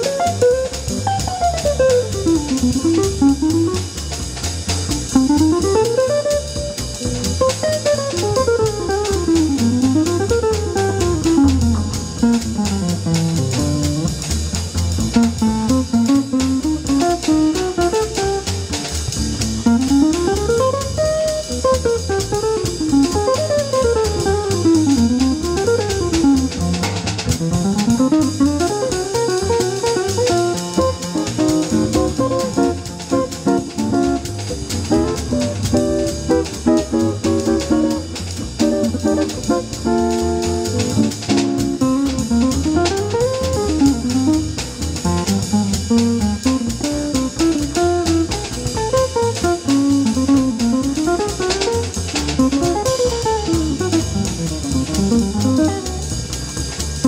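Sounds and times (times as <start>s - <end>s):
jazz trio playing: 0.0s - 57.0s
ride cymbal: 0.0s - 57.0s
upright bass line: 0.0s - 57.0s.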